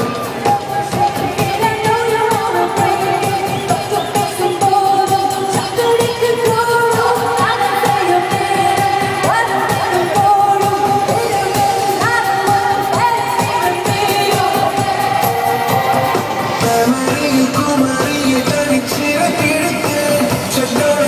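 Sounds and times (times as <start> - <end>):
steady drum beat: 0.0 - 21.0
woman singing into microphone: 0.0 - 21.0.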